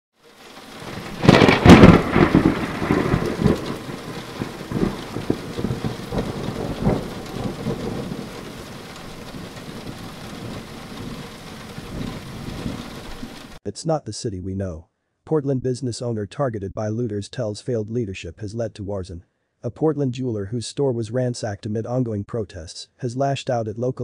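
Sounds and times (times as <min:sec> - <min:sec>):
steady rain: 0:00.2 - 0:13.6
rumbling thunderclap: 0:00.5 - 0:13.6.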